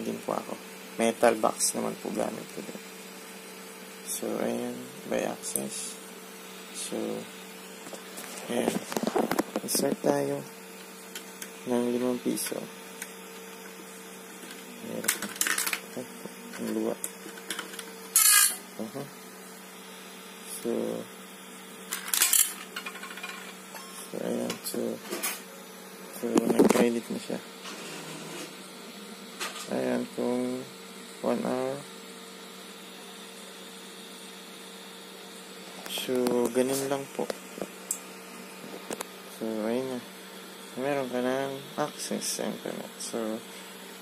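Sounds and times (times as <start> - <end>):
vending machine electrical hum: 0.0 - 44.0.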